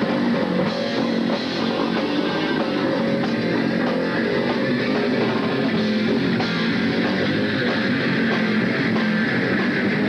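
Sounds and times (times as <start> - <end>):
drum kit: 0.0 - 10.0
electric guitar: 0.0 - 10.0
rock band playing: 0.0 - 10.0.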